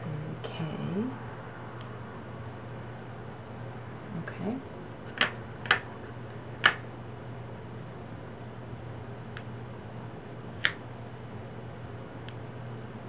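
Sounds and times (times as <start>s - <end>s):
faint low hum: 0.0s - 13.0s.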